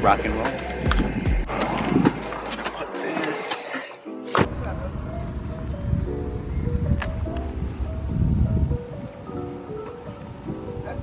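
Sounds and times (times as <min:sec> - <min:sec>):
mellow background music: 0:00.0 - 0:11.0
wind rumble on microphone: 0:04.5 - 0:11.0.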